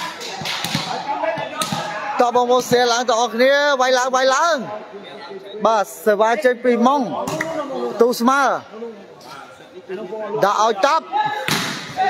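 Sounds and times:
volleyball smack in a hall: 0.0s - 2.8s, 11.3s - 12.0s.

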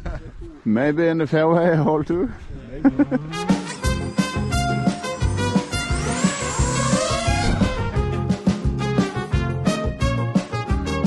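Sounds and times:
drone motors whining: 2.9s - 8.3s
background music with steady beat: 3.3s - 11.0s.

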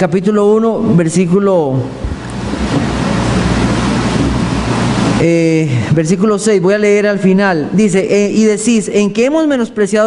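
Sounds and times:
air blowing across microphone: 1.9s - 5.3s.

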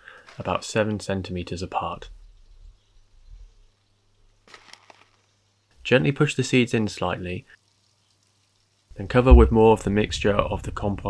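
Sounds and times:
soft low rumble: 8.9s - 11.0s
steady low hum: 8.9s - 11.0s.

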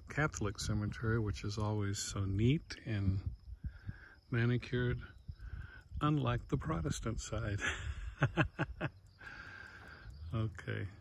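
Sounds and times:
man chuckling quietly: 7.5s - 9.4s.

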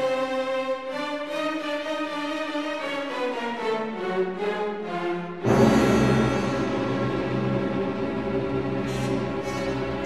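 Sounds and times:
orchestra playing long held notes: 0.0s - 10.0s.

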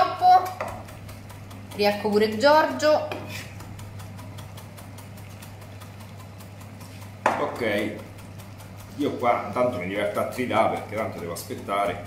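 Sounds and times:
steady low hum: 0.0s - 12.0s
knife chopping on cutting board: 0.4s - 11.7s.

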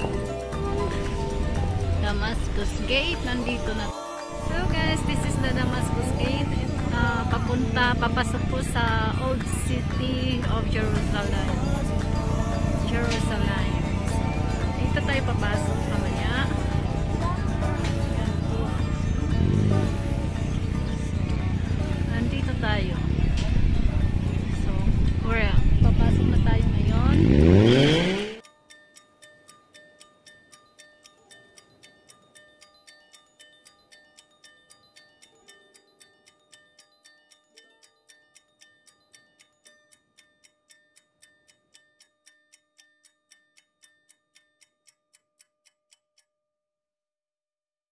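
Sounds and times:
soft chime-like background music: 0.0s - 44.1s
loud rising pitch noise: 27.1s - 28.4s.

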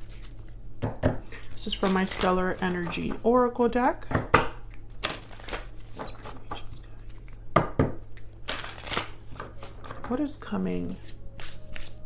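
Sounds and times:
cards being shuffled: 1.4s - 3.2s, 5.0s - 7.3s, 8.4s - 10.0s, 11.0s - 12.0s.

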